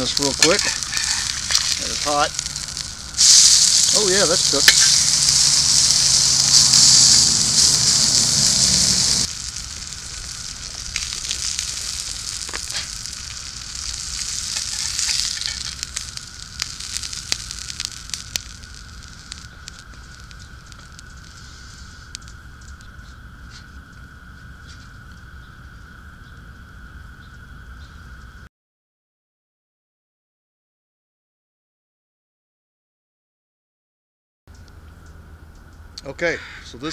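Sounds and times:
meat sizzling in a pan: 0.0s - 23.7s
hot pan sizzle and crackle: 0.0s - 27.2s.

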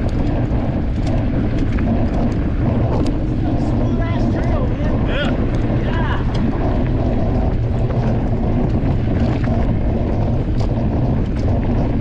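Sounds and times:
bike tyres rolling on dirt: 0.0s - 12.0s
wind on microphone: 0.0s - 12.0s.

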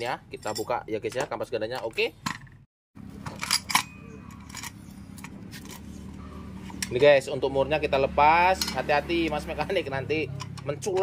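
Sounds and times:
metal tools clinking: 0.0s - 2.5s, 3.1s - 7.2s, 8.5s - 8.9s
steady low background hum: 0.0s - 7.0s.

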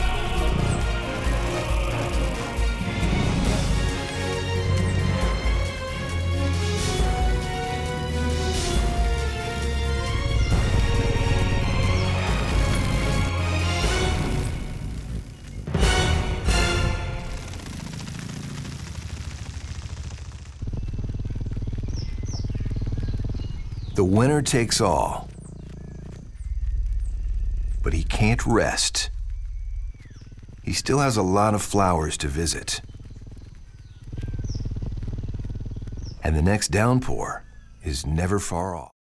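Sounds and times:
high falling chirps: 0.0s - 37.9s
hummingbird wings humming: 0.0s - 38.7s
faint high chirps: 20.7s - 36.3s.

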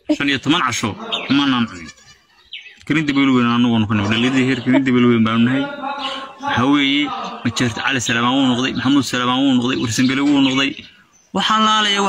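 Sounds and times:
drawn-out voiced syllable: 0.0s - 1.9s, 3.6s - 9.0s
person talking: 0.0s - 1.9s, 2.9s - 10.8s.

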